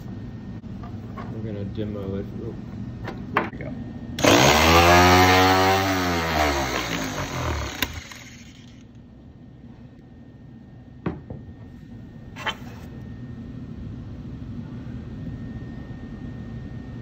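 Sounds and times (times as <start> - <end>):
power shear motor whine: 4.2 - 8.9.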